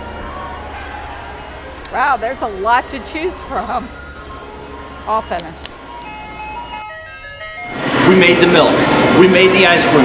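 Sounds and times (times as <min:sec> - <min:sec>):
electronic jingle: 0:00.0 - 0:08.7.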